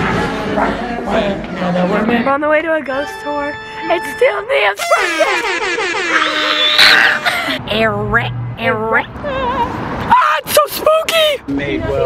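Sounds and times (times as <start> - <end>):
breathy shriek: 4.8 - 7.6
young women squealing and laughing: 4.8 - 7.6.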